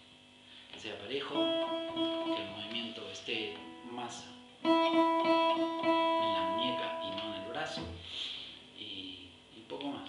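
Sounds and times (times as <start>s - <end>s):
guitar note ringing: 1.2s - 8.2s
man talking quietly: 6.2s - 8.0s.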